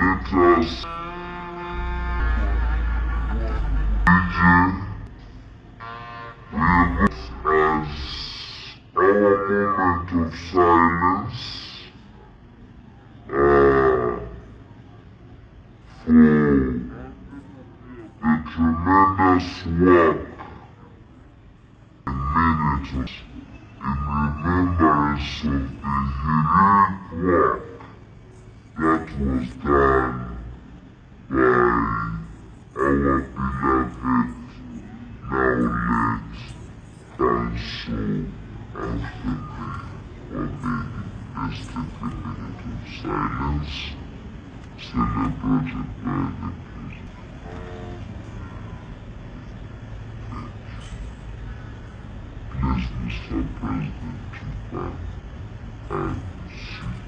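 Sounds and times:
man speaking in low voice: 0.0 - 12.4, 13.2 - 15.1, 15.8 - 20.9, 22.0 - 48.2, 49.3 - 51.0, 52.4 - 57.0.

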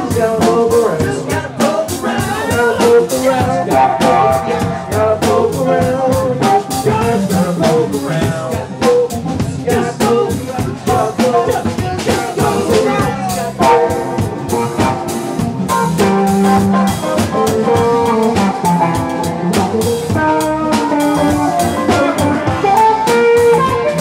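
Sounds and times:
drum kit hits: 0.0 - 24.0
lead line of held notes: 0.0 - 24.0
rock band playing: 0.0 - 24.0.

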